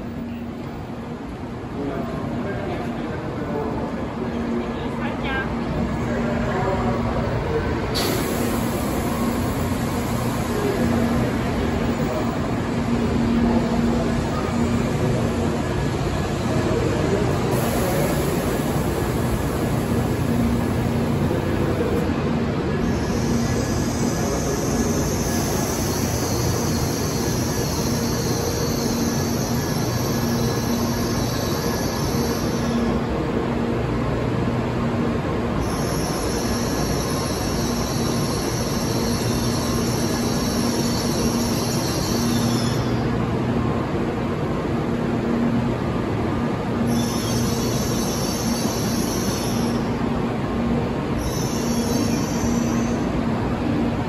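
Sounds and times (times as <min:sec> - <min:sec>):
train rolling slowly: 0:00.0 - 0:54.0.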